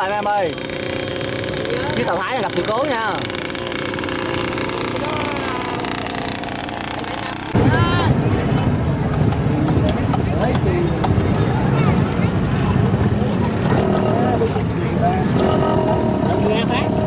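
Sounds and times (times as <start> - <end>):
boat engine running: 0.0 - 17.0
engine hum: 0.0 - 17.0.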